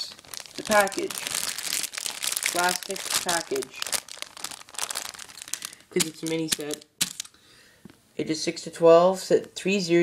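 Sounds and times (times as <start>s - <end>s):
plastic bag crinkling: 0.0s - 7.4s.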